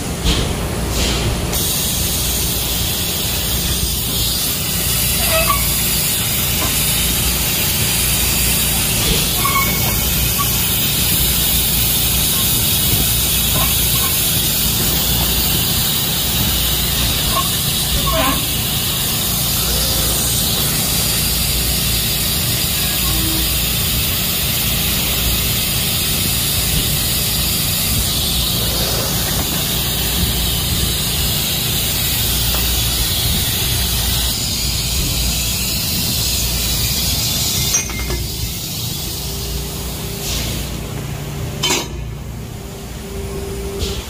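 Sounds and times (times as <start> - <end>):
laser cutter hissing: 0.9 - 40.8.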